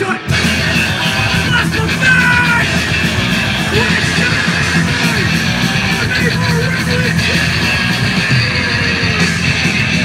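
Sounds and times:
shouted vocals: 0.0s - 7.6s
bass guitar: 0.0s - 10.0s
distorted electric guitars: 0.0s - 10.0s
drums: 0.0s - 10.0s.

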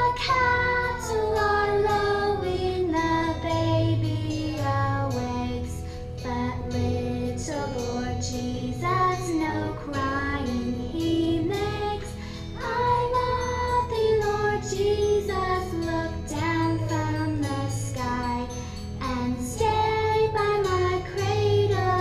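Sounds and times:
children singing in unison: 0.0s - 5.7s, 6.3s - 18.4s
musical accompaniment with bass: 0.0s - 22.0s.

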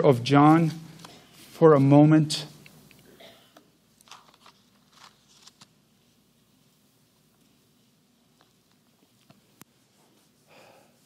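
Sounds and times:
thin pages turning: 4.0s - 5.8s.

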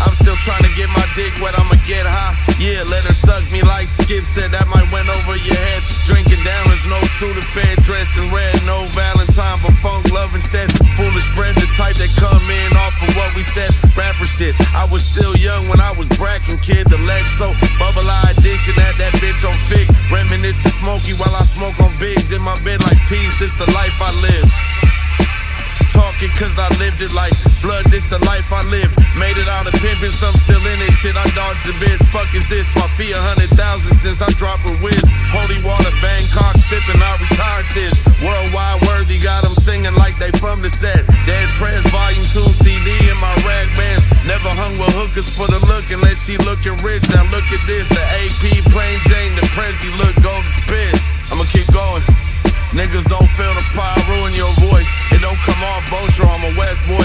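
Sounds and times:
heavy bass and drum hits: 0.0s - 57.0s
rapping over a beat: 0.0s - 57.0s.

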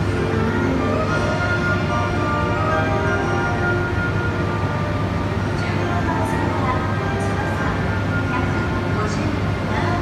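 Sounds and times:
low hum of stationary train: 0.0s - 10.0s
station melody over loudspeakers: 0.0s - 10.0s.

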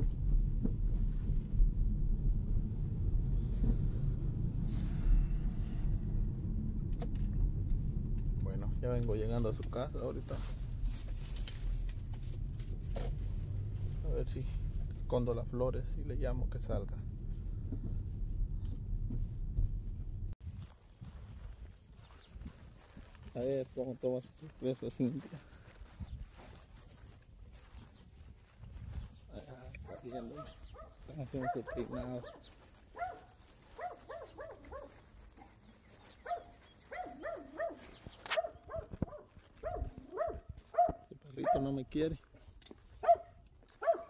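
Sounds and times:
car cabin rumble: 0.0s - 20.4s
small dog yapping: 29.9s - 35.5s, 36.2s - 41.6s, 43.0s - 44.0s.

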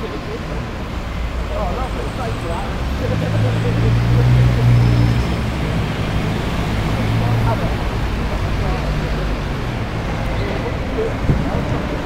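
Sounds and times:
road traffic noise: 0.0s - 12.0s.

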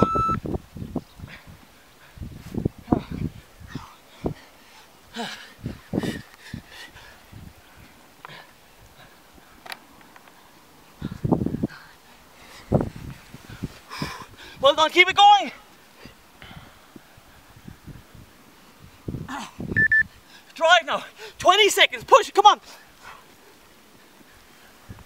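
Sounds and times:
man panting and grunting: 1.2s - 7.4s, 11.0s - 12.9s, 13.9s - 14.8s, 19.2s - 21.4s.

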